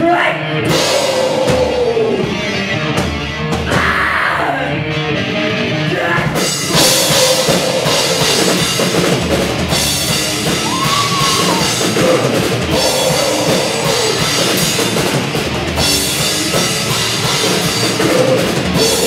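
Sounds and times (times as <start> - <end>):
pounding drum kit: 0.0 - 4.5, 5.9 - 19.0
distorted electric guitars: 0.0 - 19.0
live pop-punk band playing: 0.0 - 19.0.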